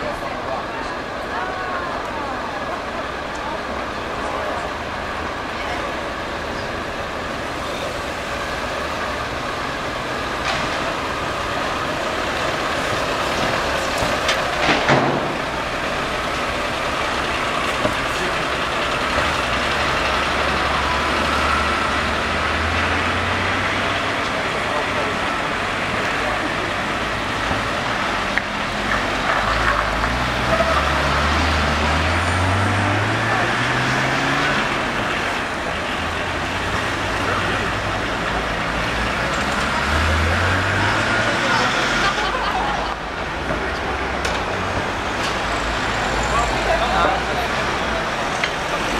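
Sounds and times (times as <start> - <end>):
background voices: 0.0 - 48.9
military vehicle engines: 0.0 - 48.9.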